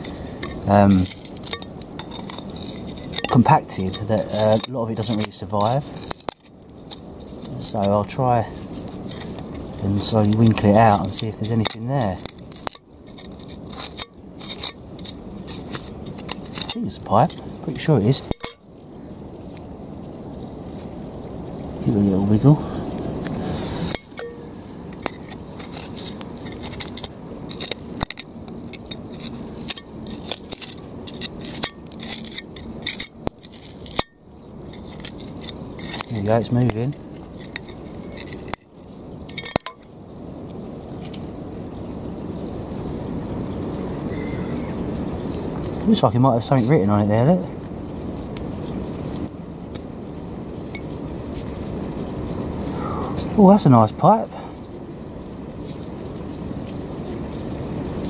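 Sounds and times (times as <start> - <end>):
fingers rubbing wet mud off clay: 0.0 - 17.4
grit and pebbles clicking in mud: 0.0 - 19.7, 20.3 - 52.4, 55.0 - 58.0.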